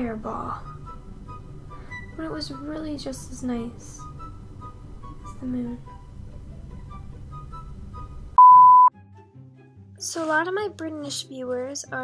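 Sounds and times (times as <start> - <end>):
faint background music: 0.0 - 8.4, 9.0 - 12.0
electronic beep tone: 8.4 - 8.9.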